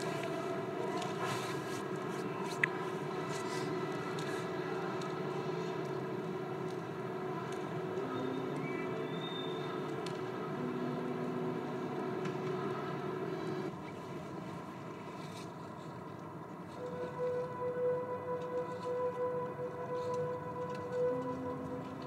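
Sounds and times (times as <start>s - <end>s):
drone of held tones: 16.7s - 22.0s.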